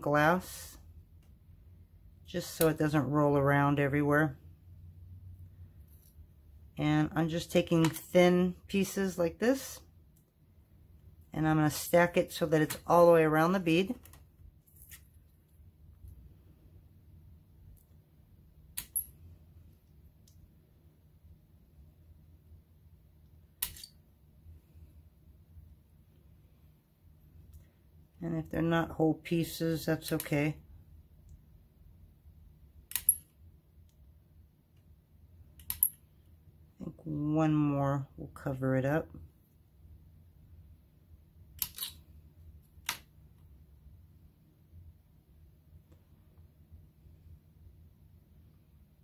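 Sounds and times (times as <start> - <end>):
faint low hum: 0.0 - 49.0.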